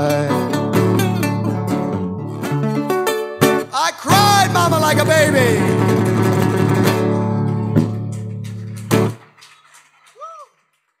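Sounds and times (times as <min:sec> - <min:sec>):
blues guitar chords: 0:00.0 - 0:09.2.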